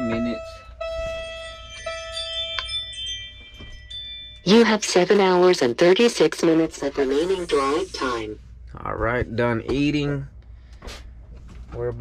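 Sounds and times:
electronic chime tones: 0.0 - 5.5.

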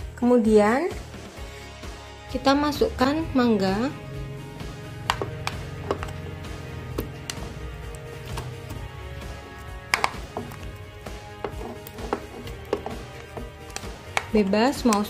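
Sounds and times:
plastic spatula scraping tub: 5.1 - 15.0.

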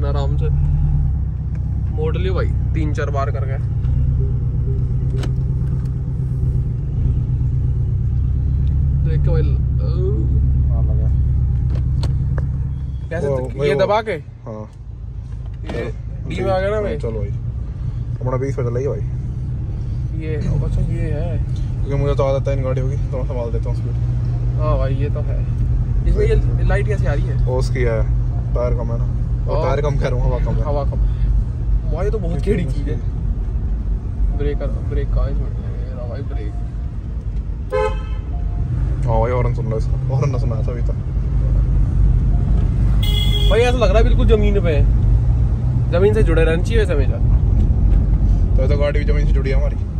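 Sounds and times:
car engine and road rumble: 0.0 - 49.9
car horn toot: 37.7 - 38.6, 42.9 - 44.0.

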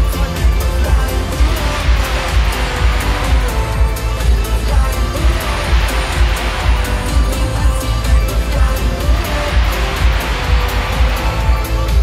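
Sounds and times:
loud live pop music: 0.0 - 12.0.

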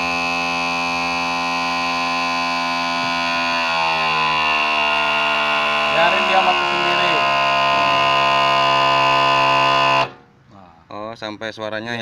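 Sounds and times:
hydraulic pump whining: 0.0 - 10.4.

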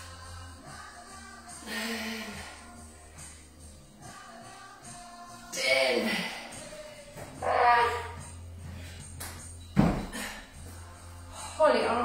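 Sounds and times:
background music: 0.0 - 12.0
dumbbells thudding on rubber floor: 9.2 - 10.4.

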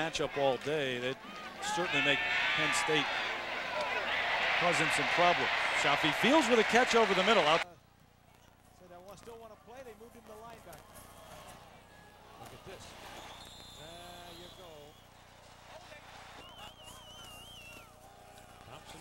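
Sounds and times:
game broadcast background noise: 0.0 - 19.0.

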